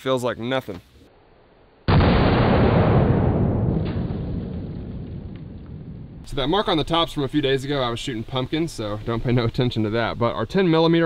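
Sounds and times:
pistol shot with rumble: 0:01.9 - 0:06.3.

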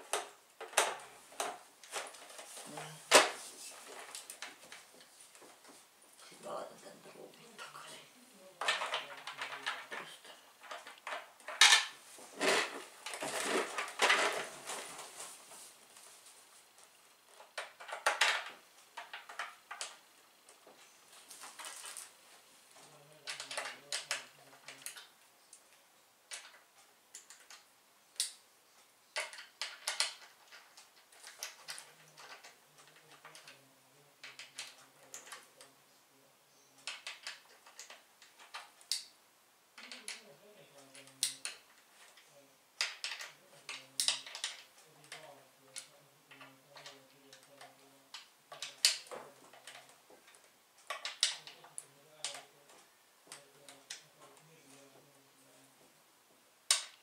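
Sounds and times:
handling plastic tube and packaging: 0:00.0 - 0:05.8, 0:08.6 - 0:25.1.

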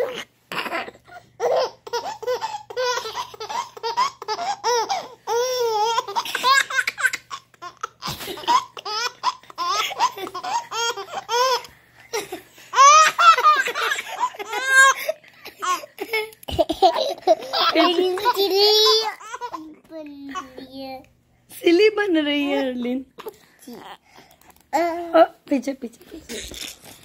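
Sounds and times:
baby laughing: 0:00.0 - 0:20.6.

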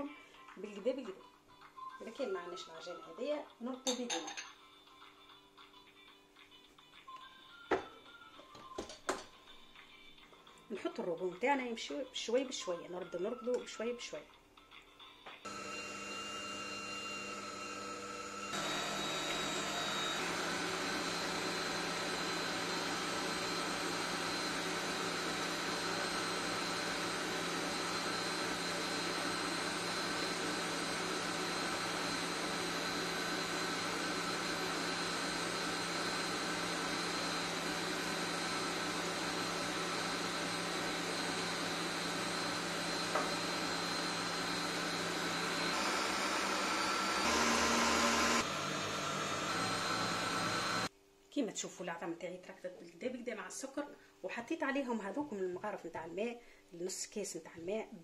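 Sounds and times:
stand mixer motor running: 0:15.5 - 0:50.9.

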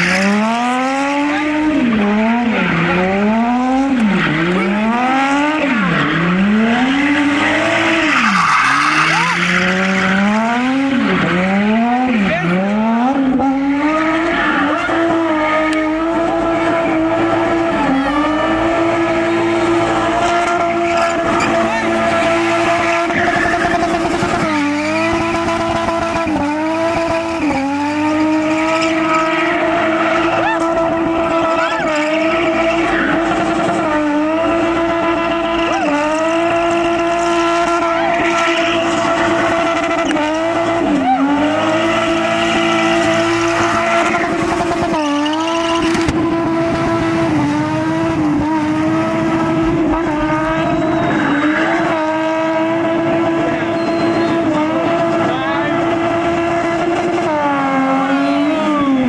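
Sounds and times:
car engine at high revs: 0:00.0 - 0:59.0
tyres squealing: 0:03.9 - 0:12.6, 0:13.3 - 0:26.4, 0:35.6 - 0:46.1.

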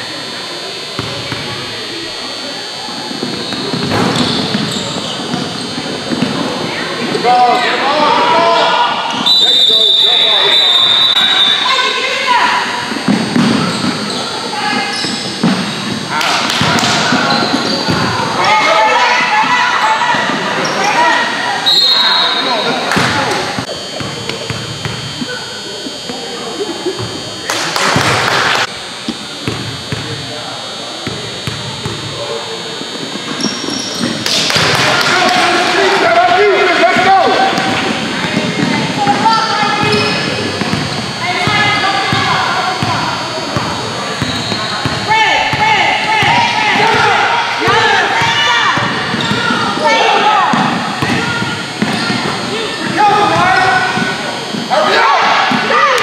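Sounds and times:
players and spectators shouting: 0:00.2 - 0:15.4, 0:16.0 - 0:29.0, 0:30.2 - 0:56.0.

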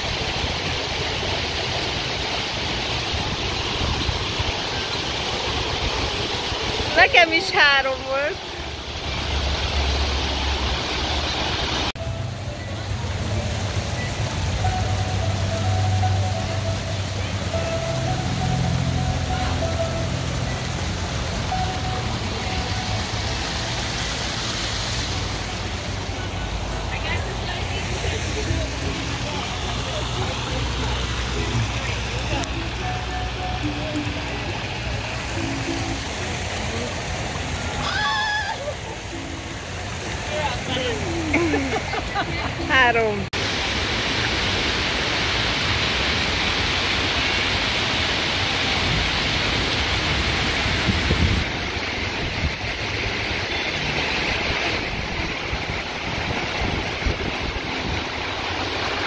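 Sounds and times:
waterfall rushing: 0:00.0 - 0:59.0
wavering high-pitched call: 0:12.0 - 0:23.7.

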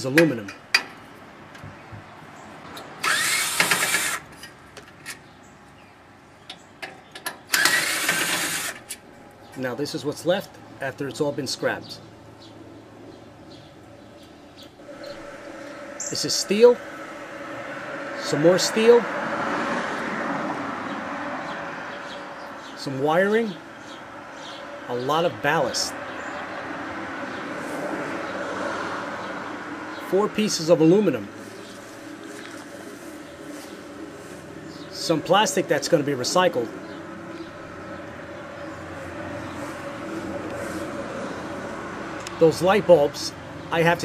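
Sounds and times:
cordless drill whining: 0:03.0 - 0:04.3
vehicle passing: 0:07.4 - 0:44.0.

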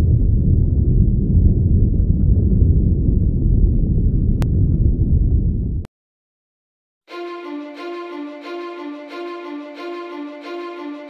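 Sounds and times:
wind buffeting microphone: 0:00.0 - 0:05.9.

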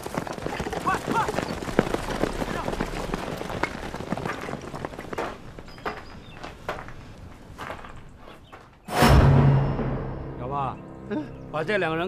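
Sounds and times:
footsteps running on dirt path: 0:00.0 - 0:08.7.

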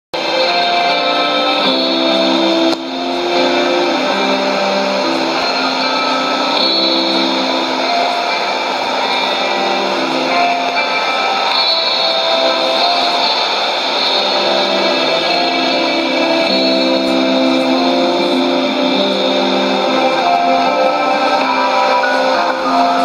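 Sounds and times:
guitar music on am radio: 0:00.2 - 0:23.0.

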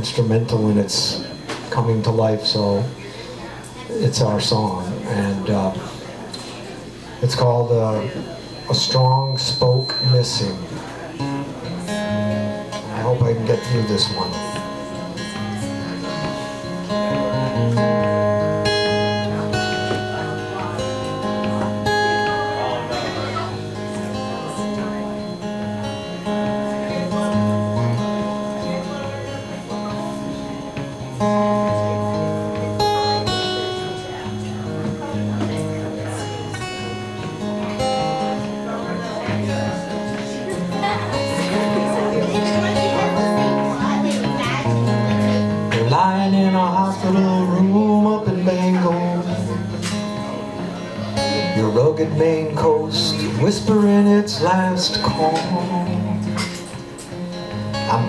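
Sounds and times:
acoustic guitar playing: 0:00.0 - 0:58.0.

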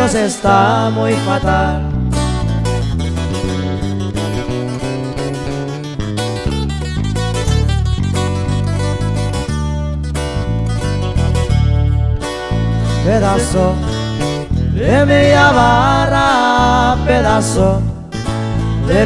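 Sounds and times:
bass line: 0:00.0 - 0:19.0
plucked acoustic guitar: 0:00.0 - 0:19.0.

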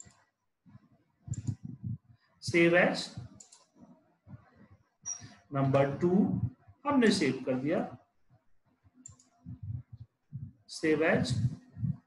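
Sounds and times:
computer mouse clicking: 0:00.0 - 0:00.3, 0:01.3 - 0:01.7, 0:03.2 - 0:03.8, 0:09.0 - 0:09.5
soft low thumps: 0:01.3 - 0:02.1, 0:06.0 - 0:06.8, 0:09.4 - 0:12.0.

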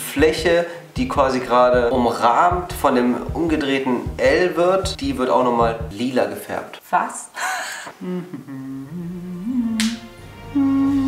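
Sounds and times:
person humming: 0:07.9 - 0:11.0.

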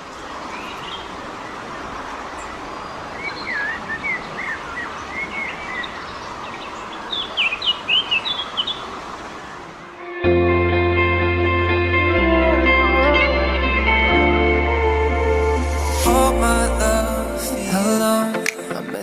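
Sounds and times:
small birds chirping: 0:00.0 - 0:09.9
outdoor ambient hiss: 0:00.0 - 0:19.0.

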